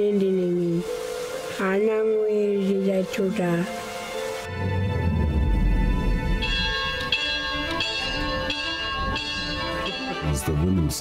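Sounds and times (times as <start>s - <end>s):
background music: 0.0s - 11.0s
church bell ringing: 6.2s - 11.0s.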